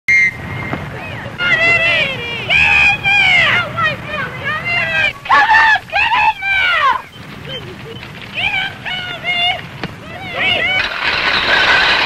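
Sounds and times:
children shouting while playing: 0:01.4 - 0:07.1.

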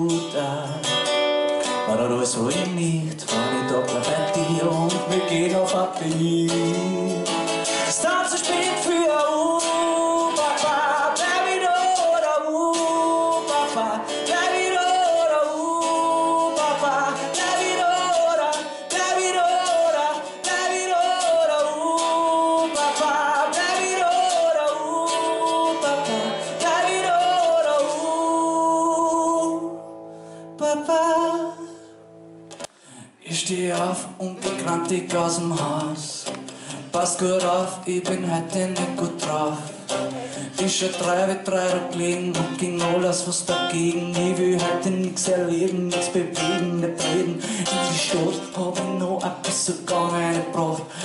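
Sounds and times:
man singing: 0:00.0 - 0:29.9, 0:30.6 - 0:31.8, 0:33.0 - 0:51.0
strummed acoustic guitar: 0:00.0 - 0:51.0.

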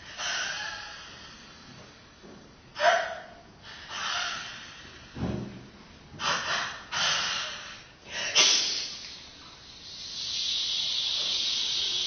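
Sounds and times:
woman's breathy bursts of air: 0:06.2 - 0:12.0
woman's steady hiss: 0:07.0 - 0:12.0.

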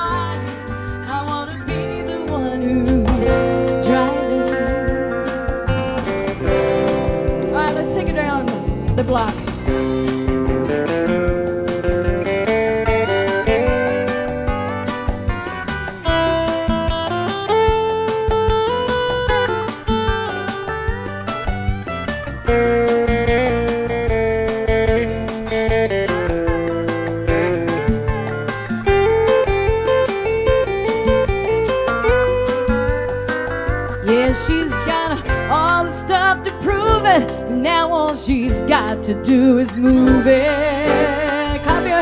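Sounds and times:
person singing: 0:00.0 - 0:05.4, 0:34.0 - 0:42.0
acoustic guitar and keyboard melody: 0:00.0 - 0:42.0
steady beat: 0:03.0 - 0:35.5.

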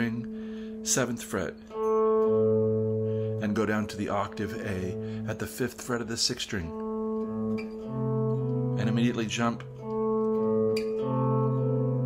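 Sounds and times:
electric guitar two-note intervals: 0:00.0 - 0:12.0.

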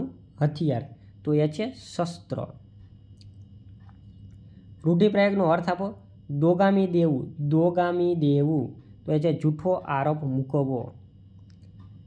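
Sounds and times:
person speaking: 0:00.0 - 0:02.9, 0:04.8 - 0:11.1
faint room hum: 0:00.0 - 0:12.0.

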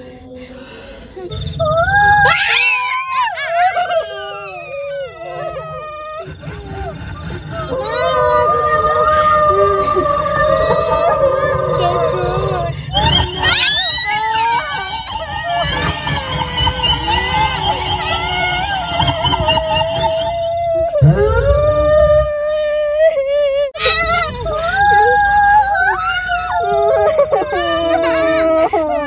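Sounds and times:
howling ghost sound effect: 0:00.0 - 0:22.7
wavering wailing voice-like sound: 0:00.0 - 0:29.0.

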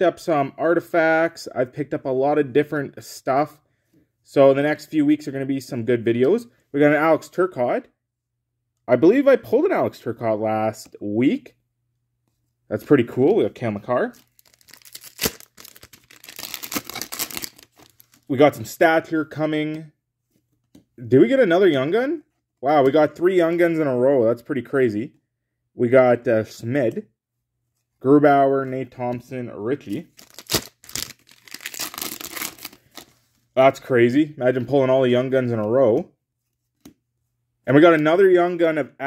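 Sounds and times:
wrapper tearing and crinkling: 0:14.2 - 0:18.3, 0:30.2 - 0:33.1.

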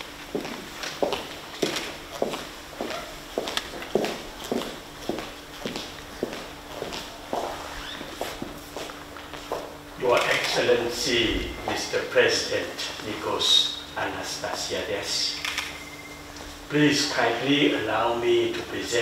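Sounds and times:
footsteps on marble floor: 0:00.0 - 0:09.8
faint steady hum: 0:00.0 - 0:19.0.

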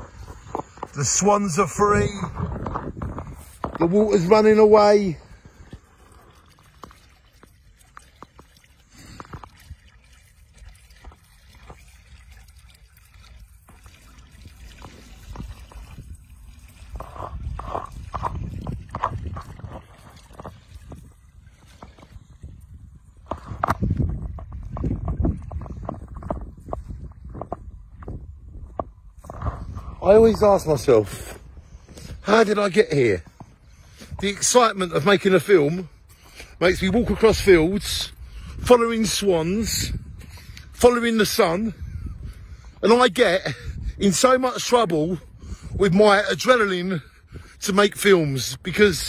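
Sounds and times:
water gurgling down a drain hole: 0:02.3 - 0:30.4.

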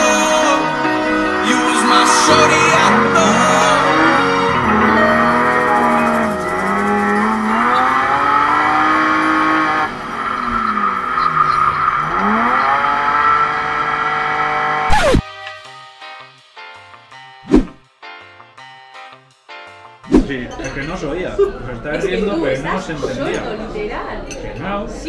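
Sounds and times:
music playing: 0:00.0 - 0:14.2, 0:14.9 - 0:24.0
car engine revving: 0:01.8 - 0:15.2.

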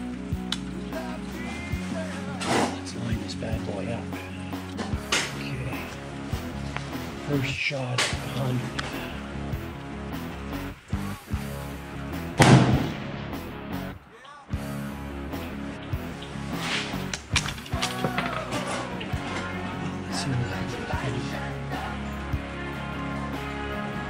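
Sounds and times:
background music: 0:00.0 - 0:24.0
rifle shot: 0:12.4 - 0:13.4.

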